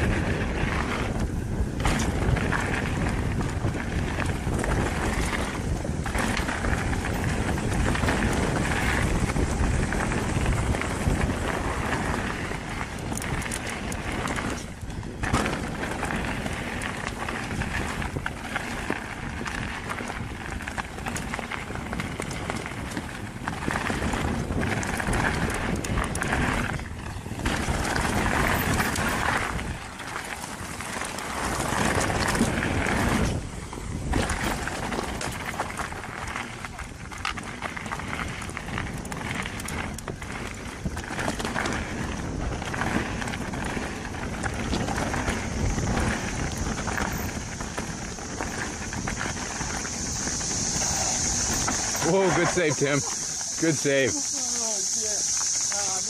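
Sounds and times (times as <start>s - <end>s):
bike rattling: 0.0s - 56.0s
tyre and trail noise: 0.0s - 56.0s.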